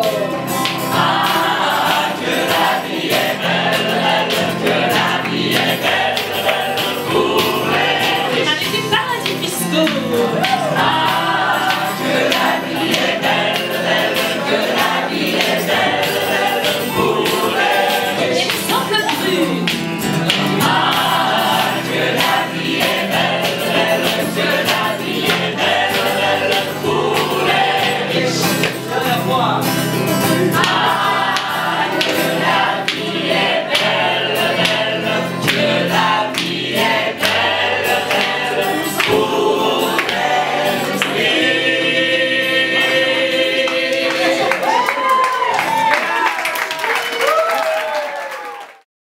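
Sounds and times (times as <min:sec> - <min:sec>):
mixed choir singing: 0:00.0 - 0:46.3.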